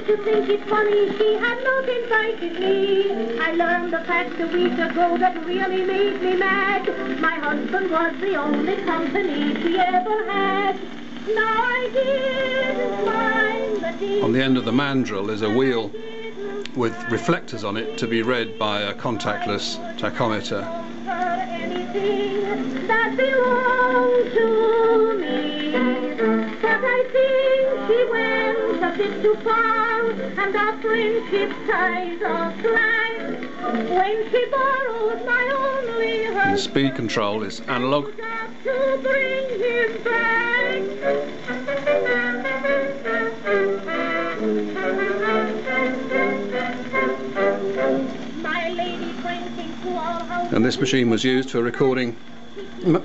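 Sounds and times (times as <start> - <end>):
woman singing on old recording: 0.0 - 50.8.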